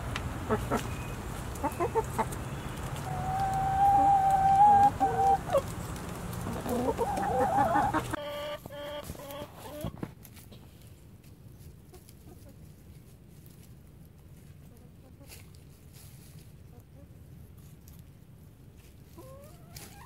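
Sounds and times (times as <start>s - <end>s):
chickens clucking: 0.0s - 10.9s, 11.5s - 20.0s
chicken long drawn-out call: 3.0s - 5.7s, 6.4s - 9.9s.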